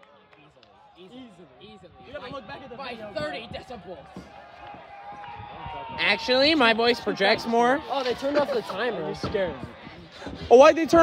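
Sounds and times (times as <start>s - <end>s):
faint spectators talking and calling: 0.0s - 11.0s.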